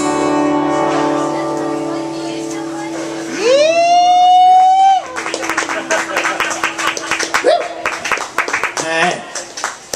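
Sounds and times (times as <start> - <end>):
acoustic guitar chord ringing: 0.0 - 4.7
person whooping: 3.4 - 5.2, 7.4 - 7.8
audience applause: 4.5 - 9.9.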